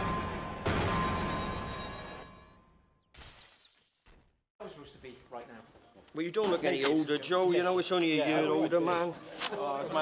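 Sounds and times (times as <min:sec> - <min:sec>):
tweeting bird sound effect: 0:02.1 - 0:04.2.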